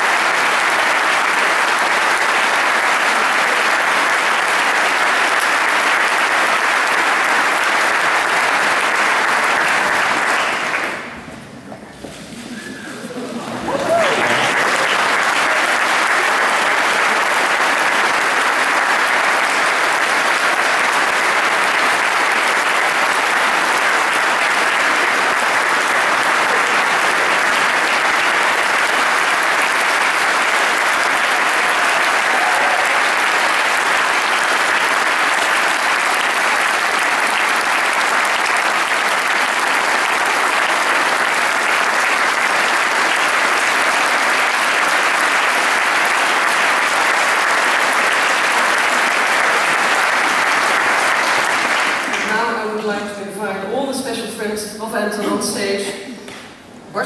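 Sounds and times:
large audience applauding: 0:00.0 - 0:52.9.

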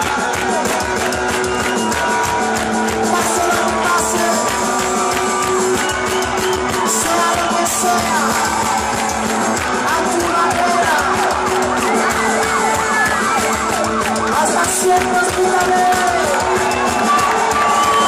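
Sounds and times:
live rock band playing: 0:00.0 - 0:18.0.

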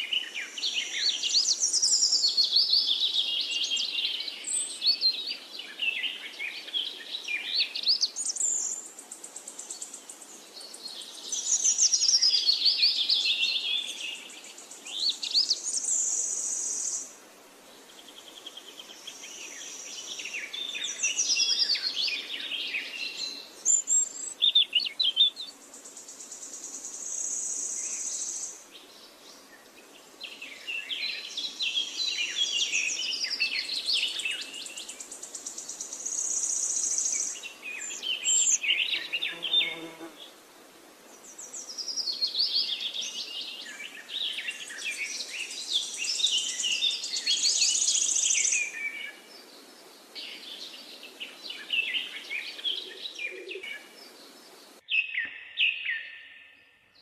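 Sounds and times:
birds chirping: 0:50.2 - 0:57.0.

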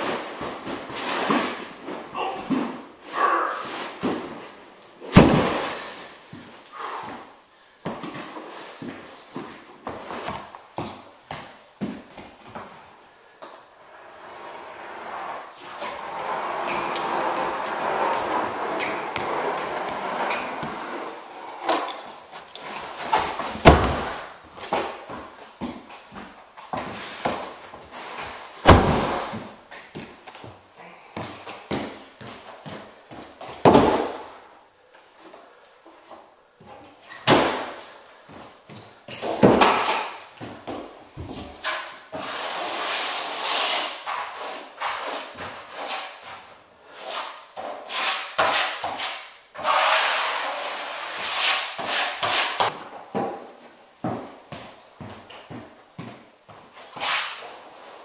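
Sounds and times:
vinyl flooring rubbing and scraping: 0:00.0 - 0:58.0.

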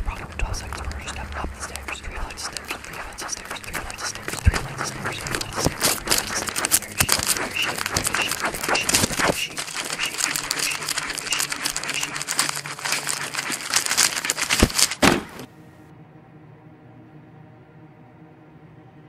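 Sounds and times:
quiet low hum: 0:00.0 - 0:14.8
pen scratching on paper: 0:00.0 - 0:15.0.

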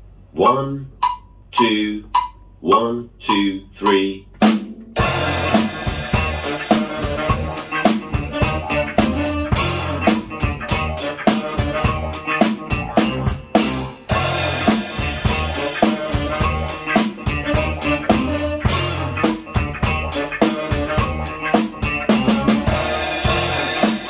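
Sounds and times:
backing track with bass: 0:00.0 - 0:24.0
drum kit groove: 0:01.0 - 0:24.0.

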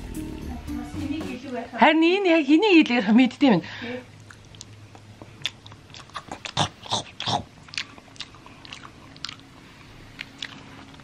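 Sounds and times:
crunching while chewing food: 0:04.2 - 0:11.0.

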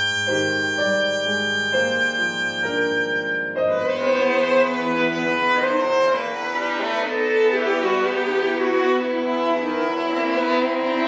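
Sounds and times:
piano: 0:00.0 - 0:11.0.

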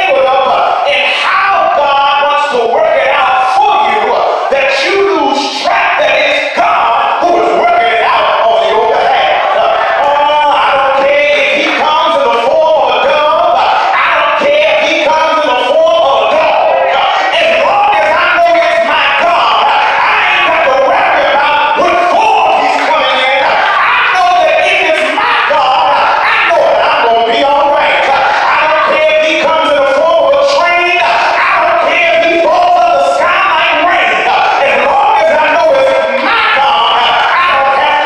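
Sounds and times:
man singing gospel into microphone: 0:00.0 - 0:38.0.

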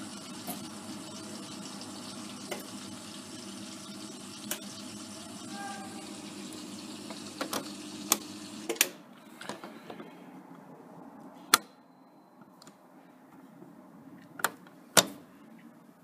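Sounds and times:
washing machine running with water: 0:00.0 - 0:08.7.

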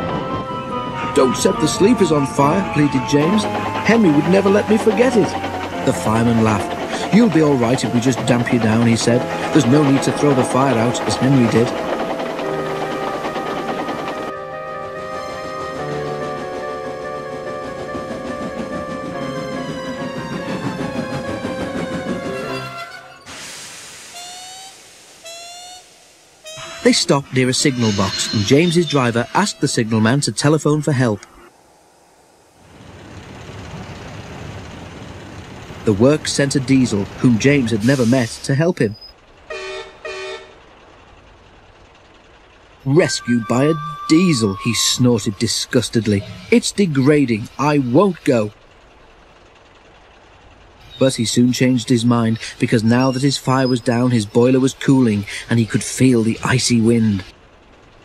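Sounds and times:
locomotive brake squeals: 0:00.0 - 0:14.3, 0:18.9 - 0:23.4, 0:24.1 - 0:31.3, 0:36.8 - 0:40.6, 0:42.8 - 0:48.6, 0:50.8 - 0:57.3
background music: 0:00.0 - 0:23.1
steam hissing: 0:02.4 - 0:14.3, 0:23.2 - 0:38.7.

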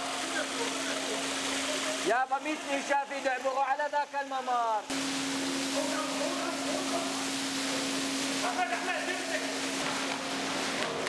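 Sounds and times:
hose spraying water on floor: 0:00.0 - 0:11.0.

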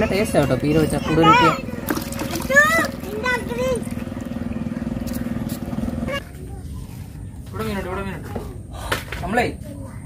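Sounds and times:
small engine running: 0:00.0 - 0:06.4.

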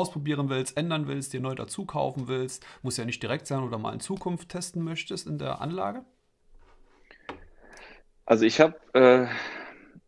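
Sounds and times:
faint breath: 0:06.9 - 0:08.1.

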